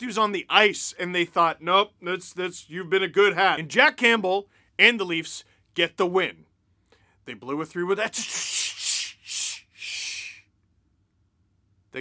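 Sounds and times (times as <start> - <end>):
man's wheezy hissing laughter: 8.0 - 10.4.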